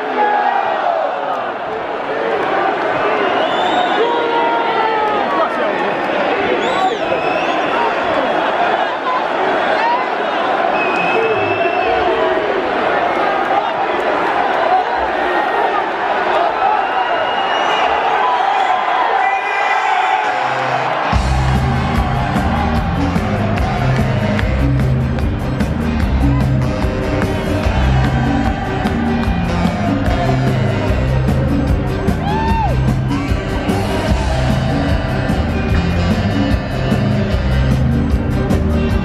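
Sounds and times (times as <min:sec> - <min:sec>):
crowd noise: 0:00.0 - 0:39.0
ska band playing: 0:21.1 - 0:39.0.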